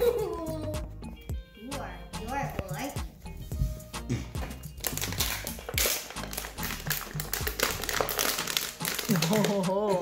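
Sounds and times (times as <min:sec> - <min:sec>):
background music: 0:00.0 - 0:10.0
plastic bottle crinkling: 0:04.4 - 0:10.0.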